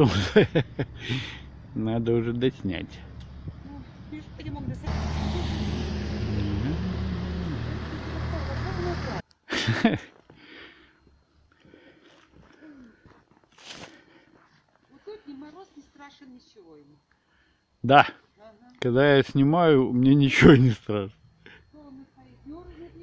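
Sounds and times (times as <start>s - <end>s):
vehicle passing on road: 3.8s - 9.2s.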